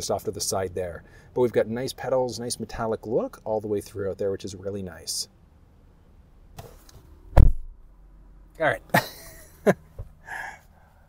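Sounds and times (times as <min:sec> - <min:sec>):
dull thump: 0:06.6 - 0:07.8, 0:09.9 - 0:10.2.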